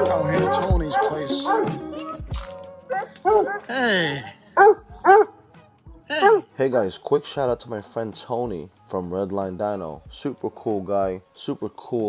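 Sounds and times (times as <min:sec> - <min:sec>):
background music: 0:00.0 - 0:12.0
hound dog barking: 0:00.3 - 0:01.9, 0:02.9 - 0:03.7, 0:04.6 - 0:05.4, 0:06.1 - 0:06.6.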